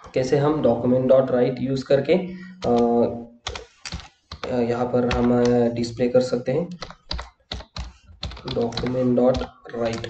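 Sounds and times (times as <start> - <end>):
computer keyboard typing: 2.5 - 10.0.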